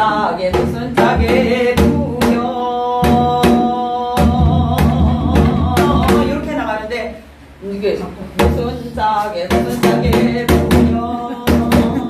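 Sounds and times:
woman singing folk song: 0:00.0 - 0:07.2, 0:08.4 - 0:12.0.

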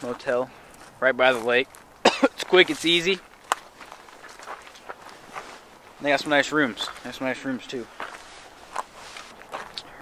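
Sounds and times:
footsteps walking: 0:00.0 - 0:10.0.

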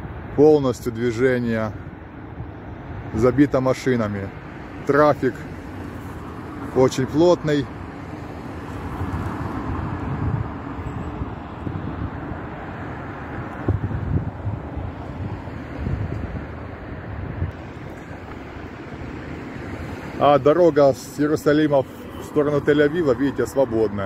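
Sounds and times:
road traffic rumble: 0:00.0 - 0:24.0
wind buffeting microphone: 0:05.6 - 0:20.8.

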